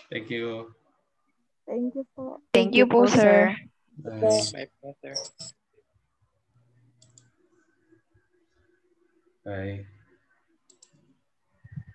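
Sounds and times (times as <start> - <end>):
faint low hum: 0.0 - 11.9
computer mouse clicks: 7.0 - 7.4, 10.6 - 11.1.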